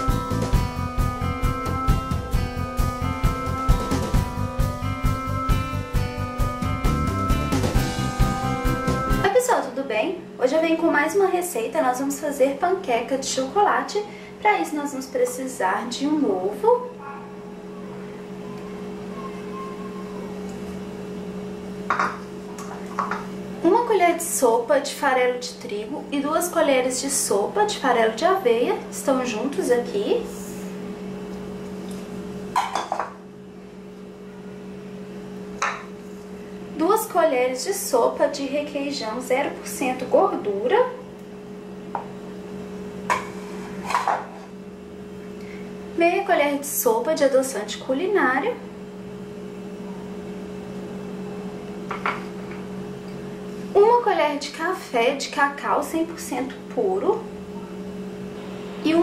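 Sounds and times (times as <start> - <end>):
low electrical hum: 0.0 - 59.0.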